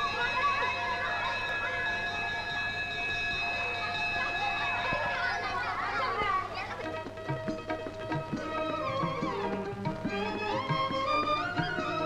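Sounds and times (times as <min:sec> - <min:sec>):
high-pitched ringing tone: 0:00.0 - 0:06.1
boys shouting and chattering: 0:00.0 - 0:12.0.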